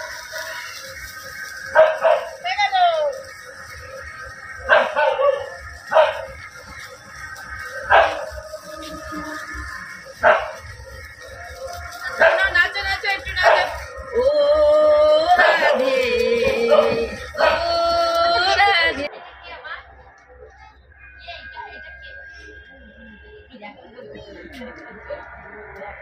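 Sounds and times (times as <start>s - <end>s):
dog barking: 1.7s - 2.4s, 4.7s - 6.4s, 7.9s - 8.3s, 10.2s - 10.6s, 12.2s - 12.6s, 13.4s - 13.8s, 16.7s - 17.7s.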